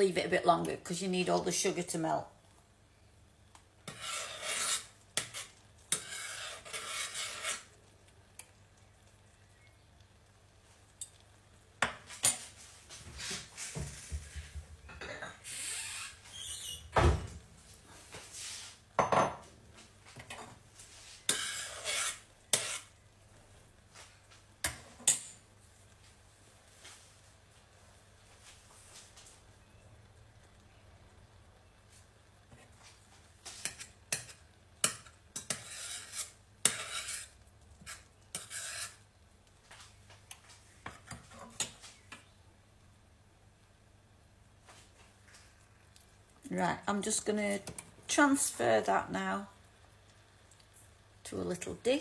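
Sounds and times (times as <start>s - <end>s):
metal spoon scraping saucepan: 3.8s - 7.8s, 15.1s - 16.8s, 20.2s - 22.9s, 33.5s - 39.0s.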